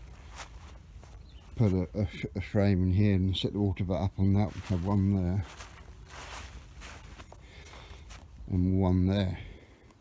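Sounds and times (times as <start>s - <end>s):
rustling grass: 0.0s - 9.6s
soft footsteps on grass: 0.0s - 10.0s.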